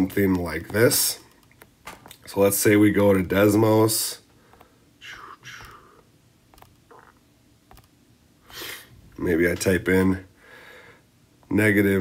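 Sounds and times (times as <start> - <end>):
soft whispered breaths: 4.3 - 6.2, 10.3 - 11.2
finger tapping touchscreen: 5.5 - 5.9, 6.5 - 7.1.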